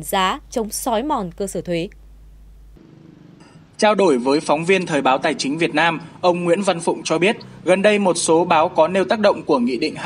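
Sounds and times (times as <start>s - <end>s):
low background hum and hiss: 0.0s - 10.0s.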